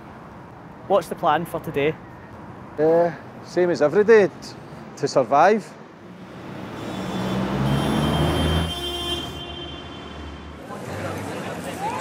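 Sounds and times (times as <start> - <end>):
heavy vehicle passing: 6.0 - 8.8.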